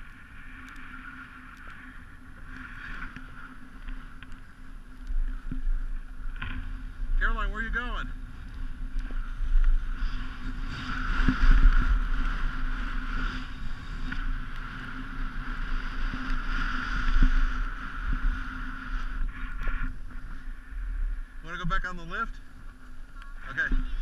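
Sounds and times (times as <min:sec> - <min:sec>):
skis sliding on snow: 0:00.0 - 0:22.7
wind rushing over microphone: 0:00.0 - 0:24.0.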